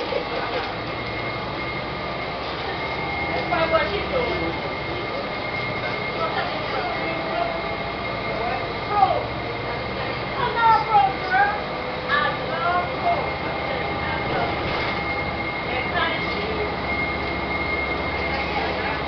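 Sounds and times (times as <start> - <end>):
bus engine and road noise: 0.0 - 19.0.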